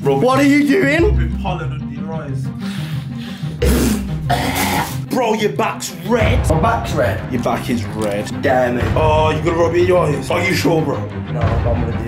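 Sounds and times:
man coughing: 0:03.6 - 0:05.0.

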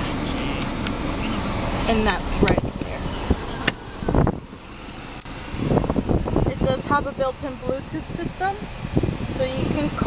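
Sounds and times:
wind buffeting microphone: 0:02.2 - 0:04.6, 0:05.4 - 0:10.0.

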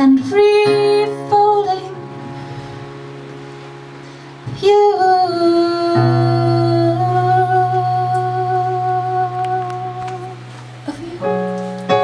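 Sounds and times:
person singing: 0:00.0 - 0:02.2, 0:04.5 - 0:11.5
faint hiss: 0:00.0 - 0:12.0
keyboard sustained chord: 0:00.4 - 0:12.0.

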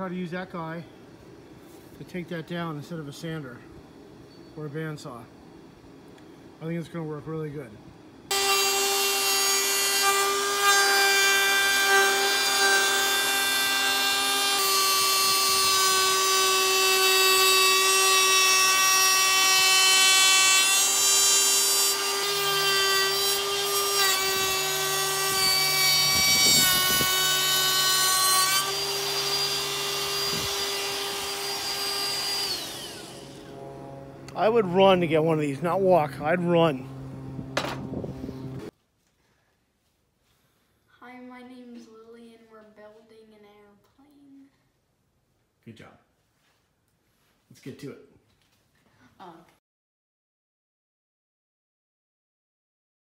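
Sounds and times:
trim router whining: 0:08.3 - 0:38.7.

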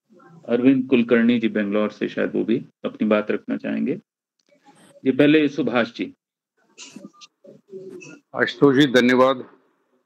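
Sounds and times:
man speaking over video call: 0:00.4 - 0:04.2, 0:08.3 - 0:09.8.

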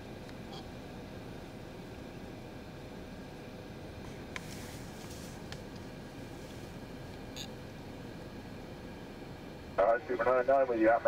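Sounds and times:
car interior rumble and hiss: 0:00.0 - 0:11.0.

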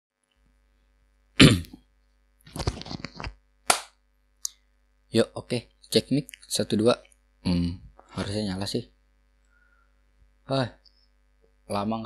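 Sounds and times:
sharp smack: 0:03.7 - 0:03.9.

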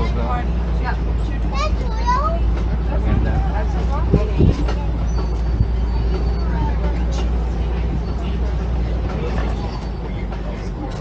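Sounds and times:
faint chatter of riders: 0:00.0 - 0:11.0
truck engine rumbling: 0:00.0 - 0:11.0.

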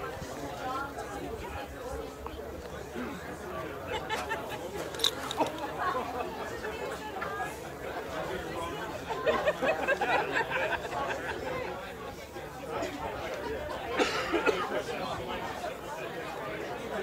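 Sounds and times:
audience chatter: 0:00.0 - 0:17.0.

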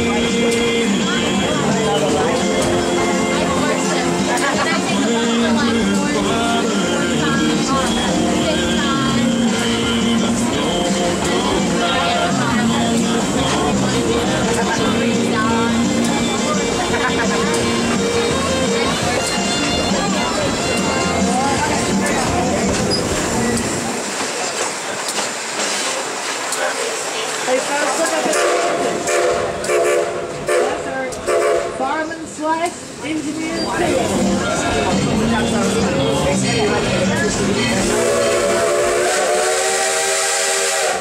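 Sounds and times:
steam train rumble and rail noise: 0:00.0 - 0:41.0
steam whistle: 0:37.9 - 0:41.0.

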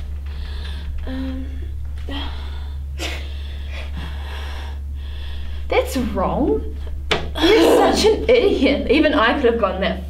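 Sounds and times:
low electrical hum: 0:00.0 - 0:10.0
person breathing breathily: 0:02.1 - 0:05.7.

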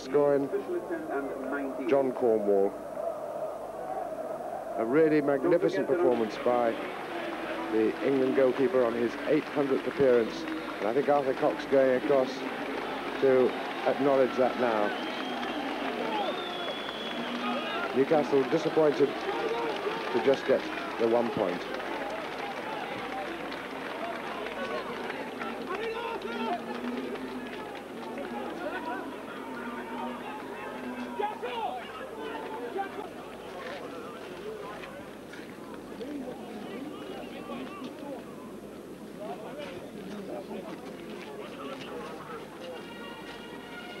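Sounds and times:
stadium crowd shouting: 0:00.0 - 0:38.6.

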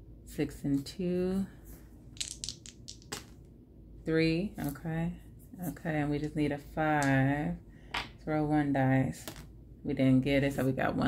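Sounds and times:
dice rattling on tabletop: 0:02.2 - 0:03.4.

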